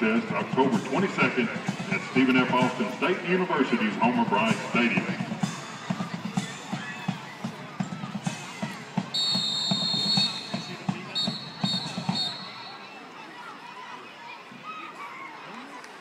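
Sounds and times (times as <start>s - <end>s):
marching band drum beat: 0.1s - 3.2s, 4.0s - 12.8s
long whistle blasts: 9.1s - 12.8s.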